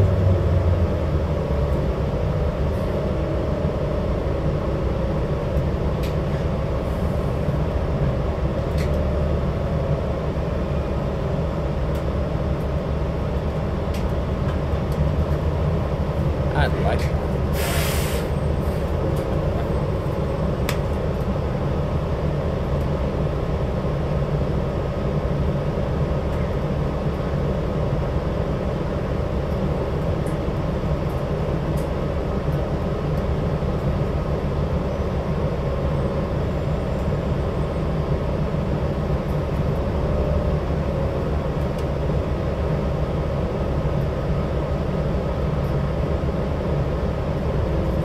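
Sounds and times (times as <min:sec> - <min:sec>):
bus engine drone from inside: 0:00.0 - 0:48.0.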